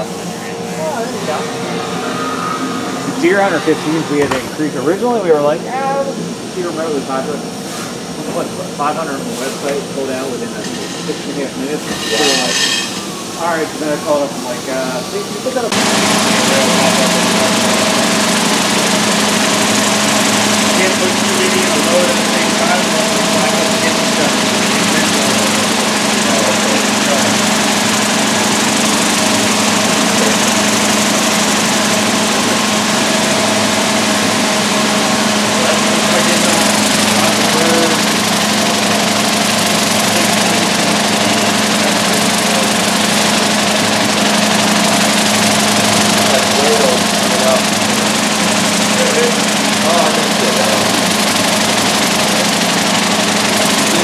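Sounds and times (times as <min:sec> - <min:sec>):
machine hum: 0:00.0 - 0:54.0.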